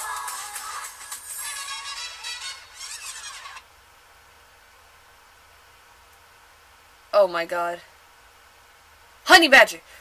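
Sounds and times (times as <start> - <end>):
pop song with vocals: 0.0 - 3.1
faint room hiss: 0.0 - 10.0.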